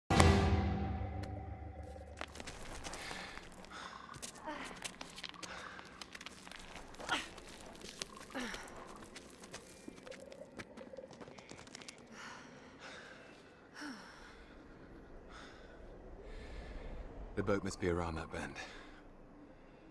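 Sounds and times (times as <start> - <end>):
scuffing footsteps on rocks: 1.9 - 12.1
people gasping and breathing heavily: 2.4 - 10.1, 11.1 - 17.0.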